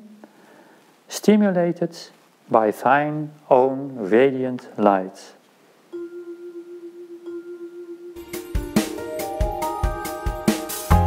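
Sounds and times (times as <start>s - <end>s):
sustained bell-like tone: 5.9s - 8.2s
music: 5.9s - 11.0s.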